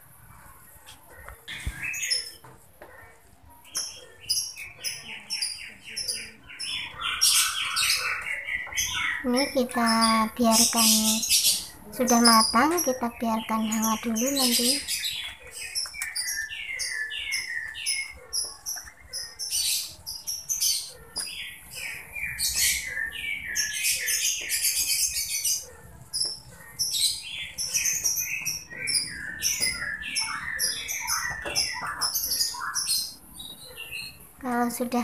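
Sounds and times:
birds chirping: 0.0 - 35.0.

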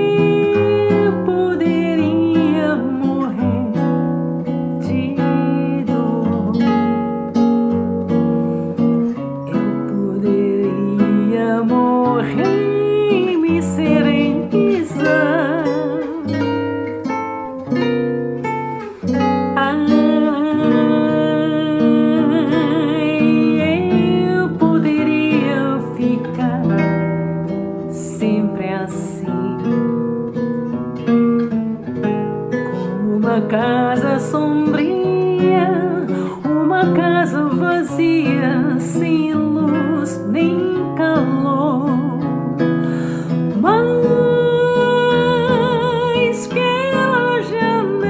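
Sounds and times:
woman singing with vibrato: 0.0 - 4.0, 4.7 - 7.2, 9.5 - 16.8, 19.4 - 27.0, 27.9 - 30.0, 32.8 - 48.0
acoustic guitar: 0.0 - 48.0.

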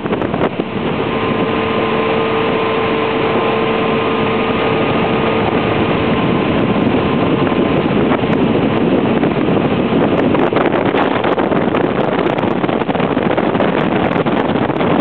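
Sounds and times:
motorboat engine running: 0.0 - 15.0
water rushing: 0.0 - 15.0
wind on microphone: 0.0 - 15.0.

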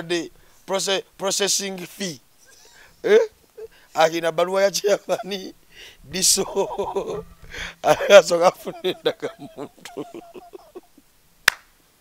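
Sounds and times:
person laughing: 2.4 - 11.1
hand clap: 11.4 - 11.7.

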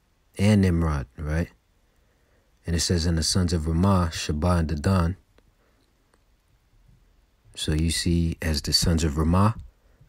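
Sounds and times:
man's voice: 0.4 - 1.6, 2.6 - 5.2, 7.5 - 9.7.

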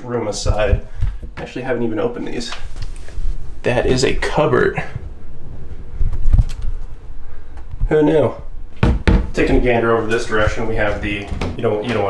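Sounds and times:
low handling rumble: 0.0 - 12.0
wooden cupboard door thump: 8.8 - 9.4.

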